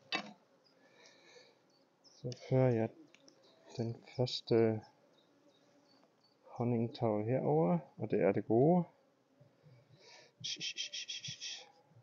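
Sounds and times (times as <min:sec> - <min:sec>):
honeybees buzzing: 0:00.0 - 0:07.4.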